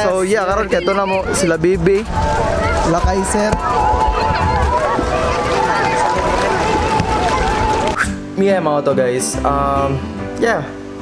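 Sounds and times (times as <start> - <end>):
crowd talking and calling out: 0.0 - 8.6
wind on microphone: 1.1 - 8.2.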